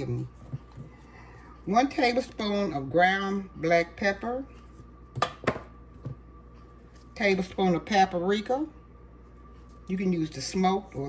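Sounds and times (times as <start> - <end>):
containers knocking on counter: 5.2 - 6.2.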